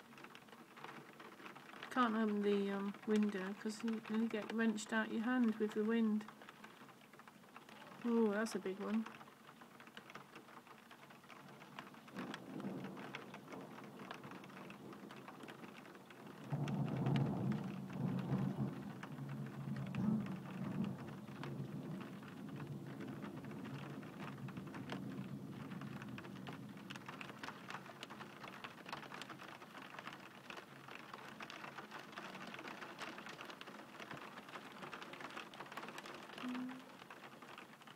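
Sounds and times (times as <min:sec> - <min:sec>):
raindrops ticking on hard surface: 0:00.0 - 0:37.9
steady rain: 0:00.0 - 0:37.9
rolling thunder: 0:12.1 - 0:15.6, 0:16.2 - 0:27.7.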